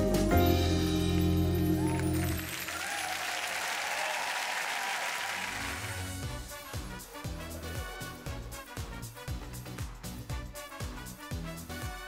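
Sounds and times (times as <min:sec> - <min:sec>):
music piece: 0:00.0 - 0:02.6
audience applause: 0:01.5 - 0:06.3
dance music: 0:05.4 - 0:12.0.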